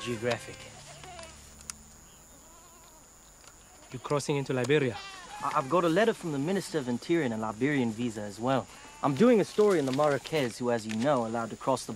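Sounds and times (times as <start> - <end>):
faint goat bleats: 0.0 - 1.4, 2.3 - 4.2, 4.8 - 5.8, 8.6 - 9.2
open-air ambience: 0.0 - 11.9.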